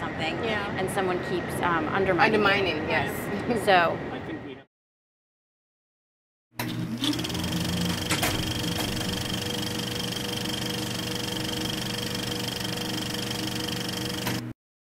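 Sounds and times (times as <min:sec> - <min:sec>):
film projector running: 0:06.6 - 0:14.6
high whine: 0:07.0 - 0:14.4.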